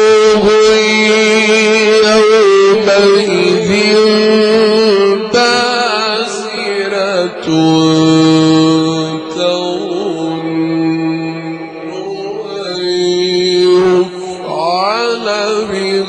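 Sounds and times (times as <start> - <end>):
man chanting melodic recitation: 0.0 - 16.0.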